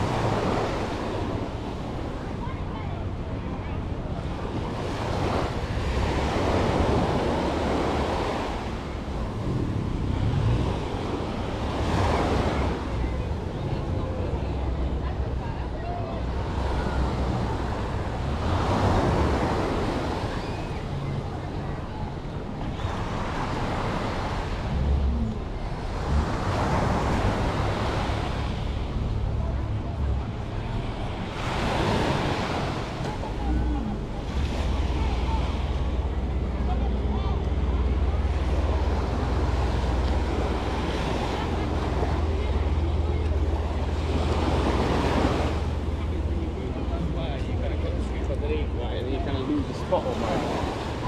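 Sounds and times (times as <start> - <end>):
waves washing on sandy shore: 0.0 - 51.0.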